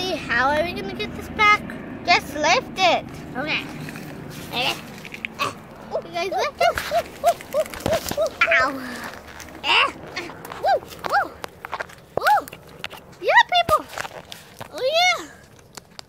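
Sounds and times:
paper rustling: 0:03.6 - 0:05.4, 0:06.5 - 0:13.1
children making ooh calls: 0:04.5 - 0:11.5.

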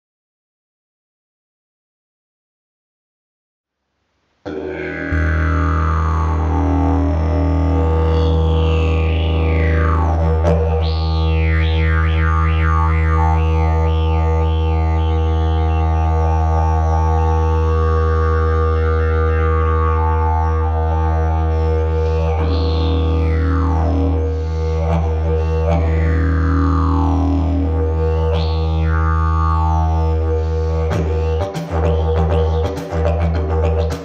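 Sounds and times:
didgeridoo drone: 0:04.5 - 0:34.0.

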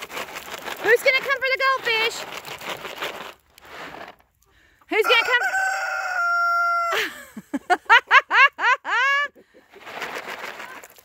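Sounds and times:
rooster crowing: 0:05.0 - 0:07.2
short chicken calls: 0:05.1 - 0:07.1.

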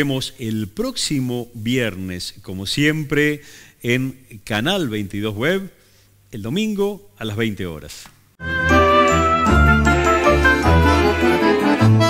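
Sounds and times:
instrumental theme music with bass: 0:08.4 - 0:12.0.

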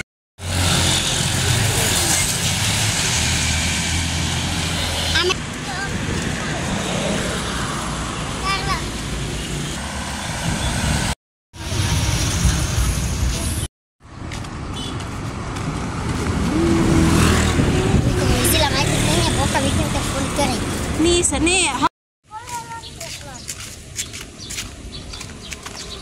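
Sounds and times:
cars and motorbikes driving past: 0:00.4 - 0:21.9
people's voices: 0:16.4 - 0:23.6.

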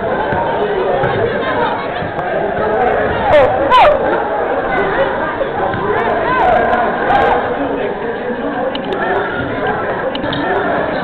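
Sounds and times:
young voices chattering: 0:00.0 - 0:11.0.

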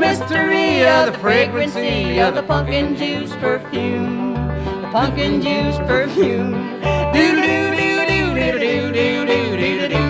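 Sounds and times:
country music with guitar and banjo: 0:00.0 - 0:10.0
voice singing wordless notes: 0:00.0 - 0:10.0.

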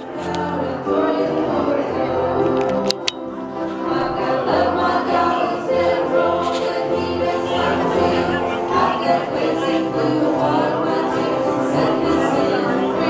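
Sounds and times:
group singing worship music: 0:00.0 - 0:13.0.

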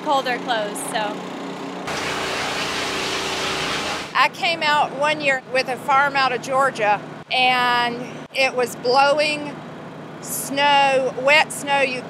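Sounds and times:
rushing hiss of grooming equipment: 0:01.9 - 0:04.2.

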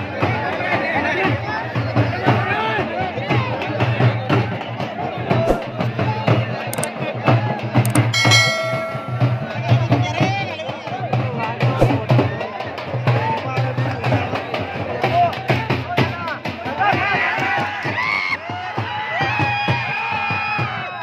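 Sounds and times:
held note: 0:07.9 - 0:09.9.

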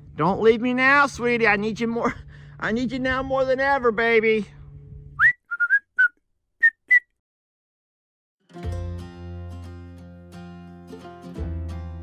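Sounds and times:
person whistling: 0:05.2 - 0:07.2.

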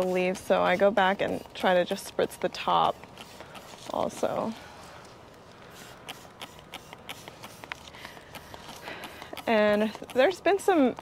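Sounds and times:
spray bottle squirting: 0:00.0 - 0:04.5, 0:05.7 - 0:11.0.

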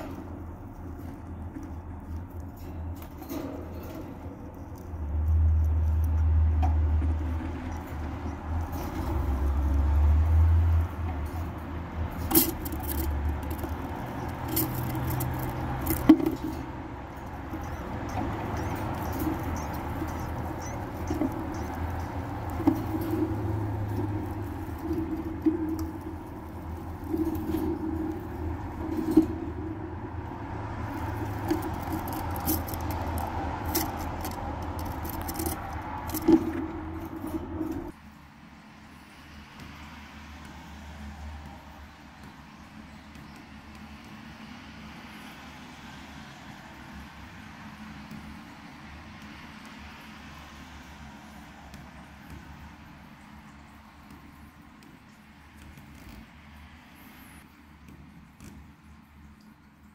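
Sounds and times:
chipmunk pups squeaking: 0:17.2 - 0:23.0.

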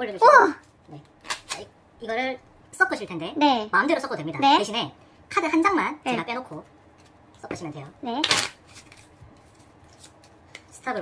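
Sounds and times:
playing cards riffle shuffled: 0:08.2 - 0:10.8.

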